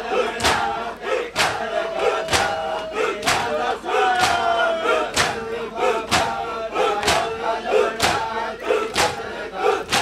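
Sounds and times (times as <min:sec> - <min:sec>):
men chanting: 0:00.0 - 0:10.0
men beating their chests: 0:00.2 - 0:05.4, 0:06.0 - 0:10.0.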